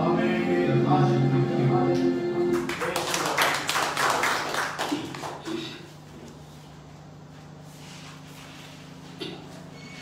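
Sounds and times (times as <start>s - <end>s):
held keyboard chord: 0.0s - 2.7s
sound system hum: 0.0s - 9.8s
congregation clapping: 2.5s - 5.5s.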